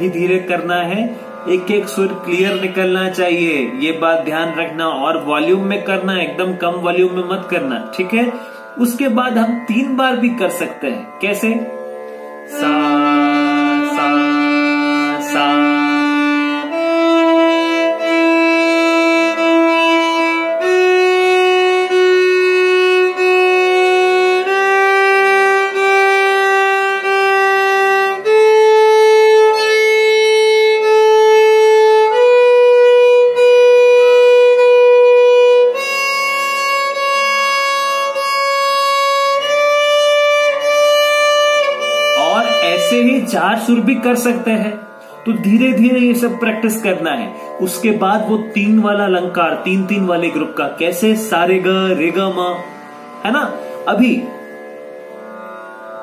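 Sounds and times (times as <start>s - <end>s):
violin playing a scale exercise: 0.0s - 55.7s.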